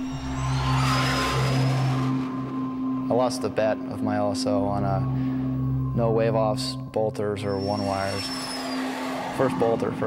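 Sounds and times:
jet flying past roaring: 0.0s - 3.1s, 8.1s - 10.0s.

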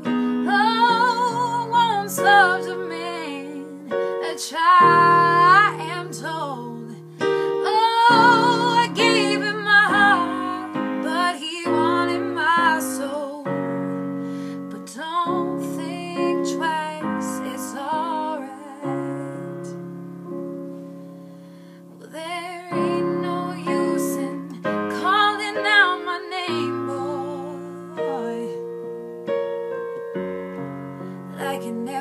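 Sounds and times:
woman singing with vibrato: 0.0s - 13.9s, 14.7s - 19.8s, 22.0s - 28.7s, 31.4s - 32.0s
digital piano chords: 0.0s - 32.0s.

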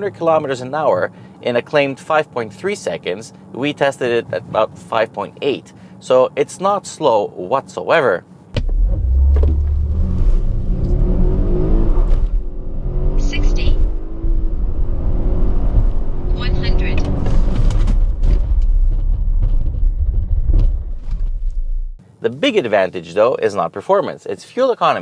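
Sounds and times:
low road rumble: 7.0s - 22.1s
car engine accelerating: 8.6s - 22.0s.

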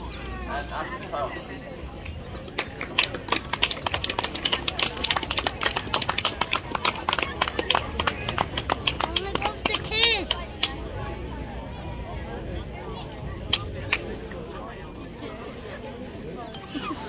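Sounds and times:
voices chatting: 0.0s - 17.0s
scattered applause: 2.4s - 11.0s, 13.1s - 14.6s.

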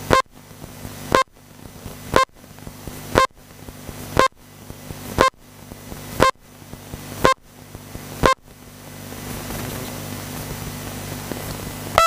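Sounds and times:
electronic countdown beeps: 0.1s - 0.3s, 1.1s - 1.4s, 3.2s - 3.4s, 4.2s - 4.4s, 5.2s - 5.4s.

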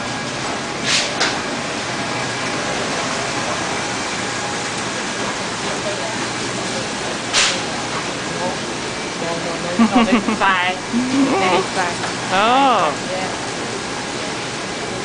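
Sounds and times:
short sharp hiss: 0.8s - 1.2s, 7.3s - 7.6s.

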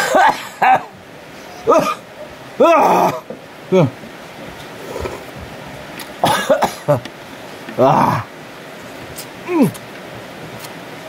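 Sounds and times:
man coughing: 0.0s - 0.9s, 1.7s - 2.0s, 6.2s - 7.0s.

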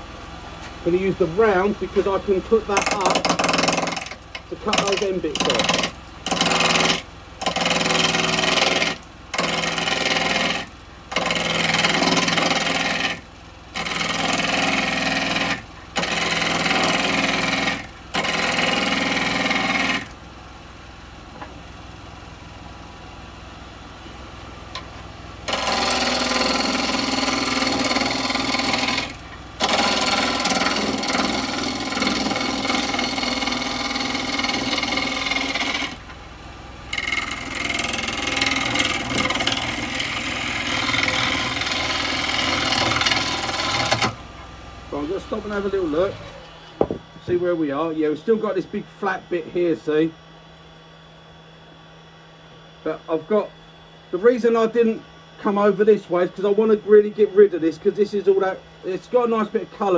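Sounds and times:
lathe motor hum: 0.8s - 20.2s, 25.4s - 36.2s, 36.8s - 44.2s, 44.9s - 49.9s
cutter scraping spinning wood: 0.9s - 20.1s, 25.4s - 36.1s, 36.9s - 44.2s, 44.9s - 49.8s.

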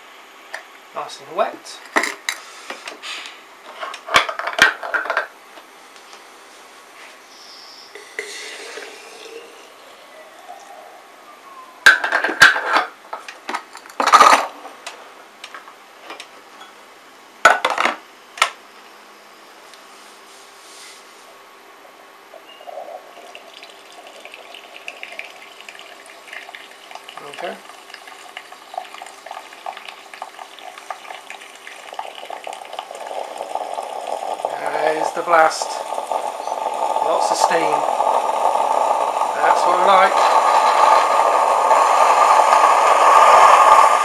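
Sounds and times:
faint rough noise: 19.6s - 44.0s.

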